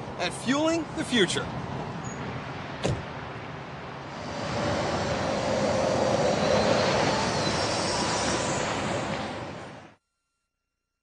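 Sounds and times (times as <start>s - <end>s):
tyre and road noise: 0.0s - 10.0s
car driving by: 4.0s - 10.0s.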